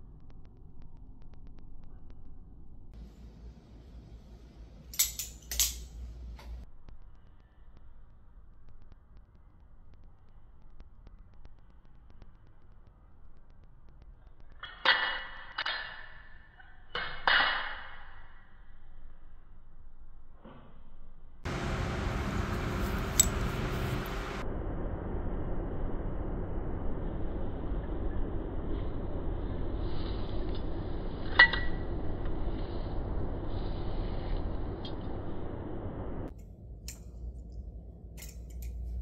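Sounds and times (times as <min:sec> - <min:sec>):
low rumble of road traffic: 0:21.4 - 0:39.0.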